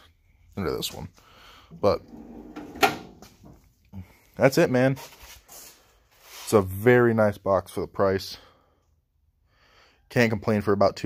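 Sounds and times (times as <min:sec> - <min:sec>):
tool box drawer sliding shut: 0:01.8 - 0:03.5
drawer clacking shut: 0:02.0 - 0:03.6.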